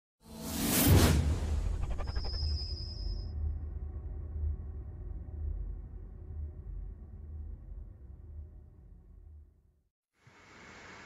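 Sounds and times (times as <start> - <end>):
steady low rumble: 3.2 - 9.6.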